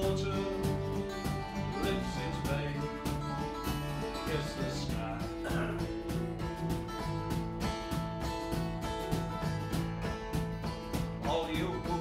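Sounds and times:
acoustic folk band playing: 0.0 - 12.0
acoustic guitars strummed: 0.0 - 12.0.

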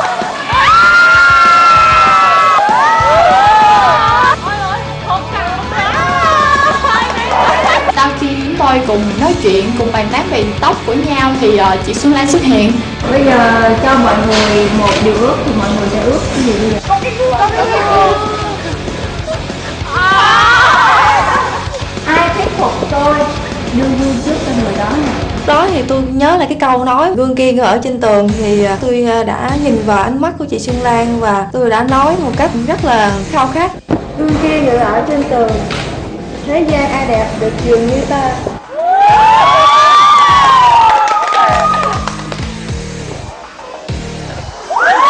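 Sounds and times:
background music: 0.0 - 45.0
women shrieking and squealing: 0.5 - 4.8, 5.8 - 7.9, 19.8 - 21.9, 38.6 - 42.0, 44.7 - 45.0.

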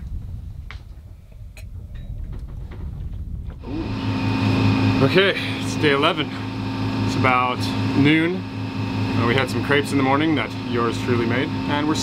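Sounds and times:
low rumble: 0.0 - 7.2
boat engine droning: 1.3 - 12.0.

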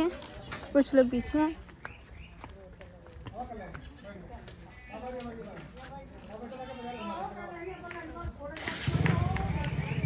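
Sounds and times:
overlapping voices talking: 6.1 - 10.0.

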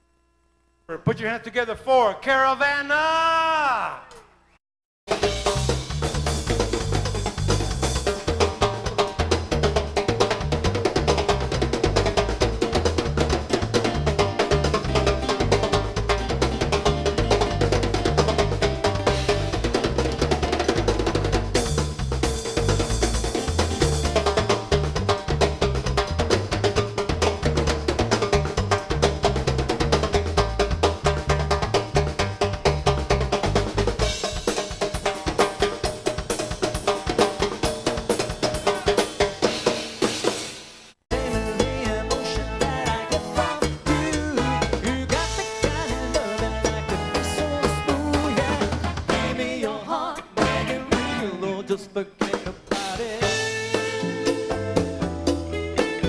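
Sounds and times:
bass guitar line: 5.1 - 34.4, 41.1 - 49.7, 50.3 - 51.7, 52.9 - 56.0
latin rock band playing: 5.1 - 56.0.

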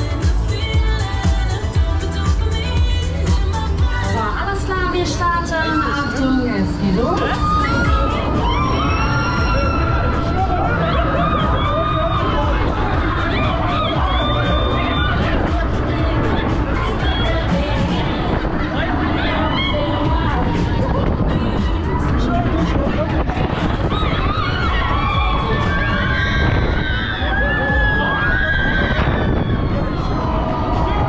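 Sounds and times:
electronic dance music: 0.0 - 19.1
wind rumble on microphone: 1.8 - 31.0
riders cheering and screaming: 5.4 - 31.0.

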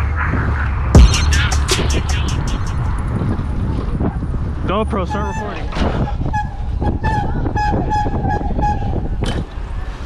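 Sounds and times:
wind on microphone: 2.7 - 10.0.

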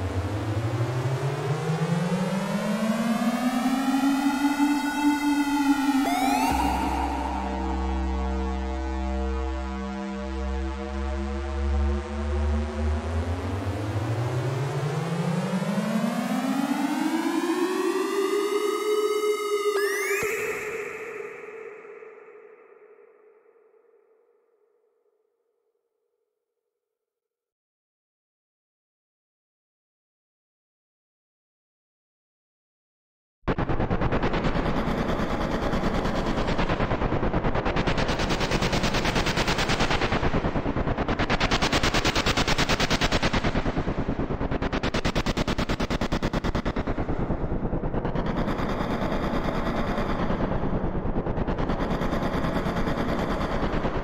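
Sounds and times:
synthesized rising buzzy tone: 3.9 - 12.9.

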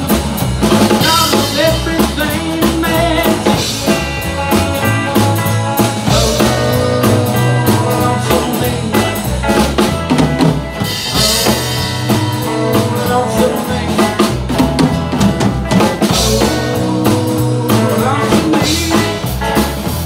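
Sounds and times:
country band playing: 0.0 - 20.0.

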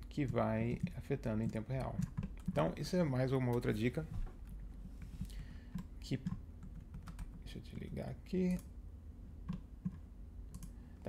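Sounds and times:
computer keyboard keystrokes: 0.2 - 2.8, 5.7 - 7.4, 9.4 - 10.8.

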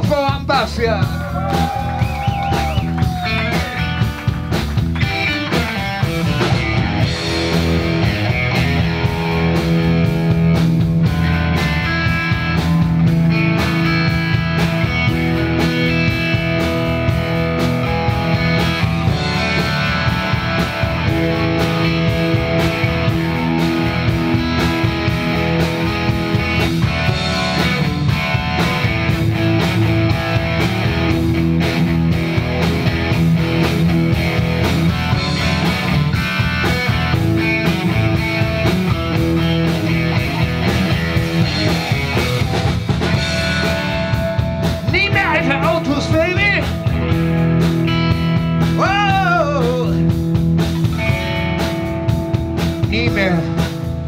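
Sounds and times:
electric bass guitar solo: 0.0 - 54.0.

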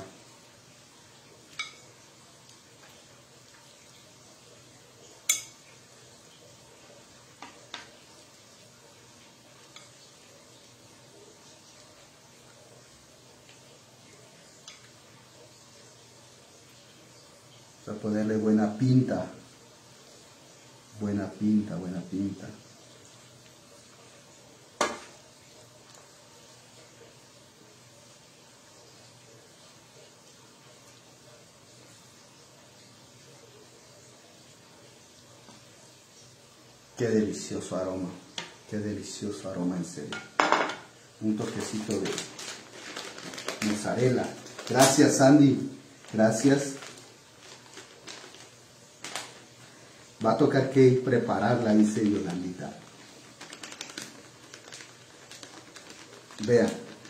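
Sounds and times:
faint steady hiss: 0.0 - 57.0
plastic packet crinkling: 41.2 - 57.0.

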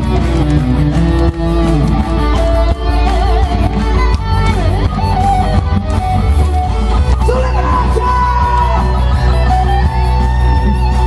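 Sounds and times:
amplified guitar: 0.0 - 11.0
heavy steady bass: 0.0 - 11.0.

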